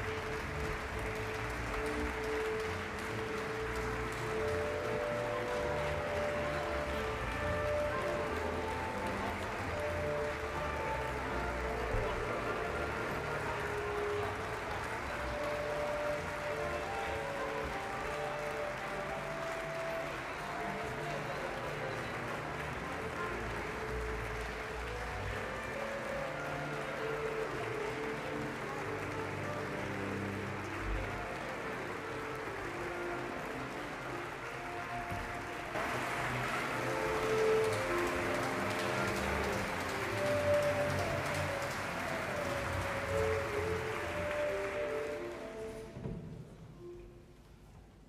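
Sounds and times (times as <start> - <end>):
orchestra holding long notes: 0.0 - 47.4.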